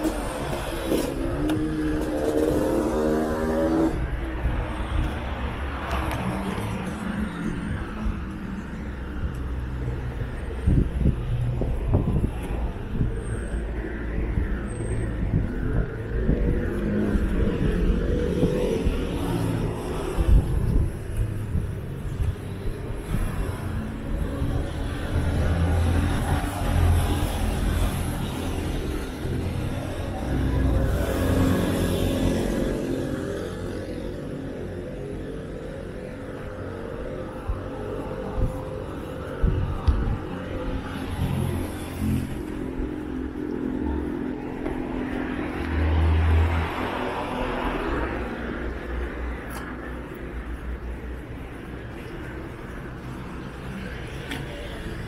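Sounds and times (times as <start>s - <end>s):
cars and buses passing: 0.0s - 55.0s.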